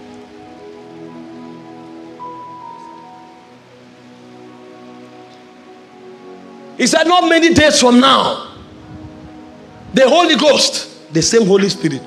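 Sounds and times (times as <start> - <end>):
faint hiss: 0.0 - 12.0
soft keyboard chords: 0.0 - 12.0.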